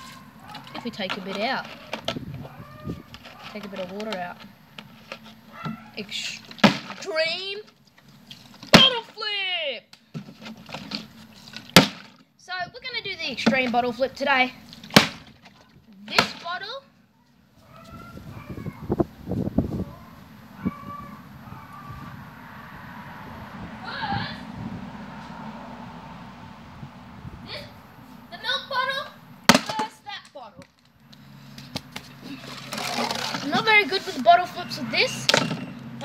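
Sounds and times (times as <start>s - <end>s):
boy's voice: 6.0s - 7.7s, 12.4s - 14.6s, 23.8s - 24.5s, 27.4s - 30.6s, 32.2s - 35.4s
plastic bottle thudding on concrete: 6.5s - 7.1s, 11.7s - 12.2s, 14.8s - 16.5s, 29.5s - 30.0s.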